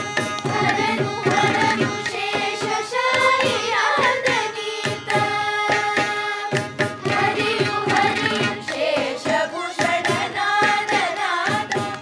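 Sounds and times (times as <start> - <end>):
children's chorus singing: 0.0 - 12.0
violin: 0.0 - 12.0.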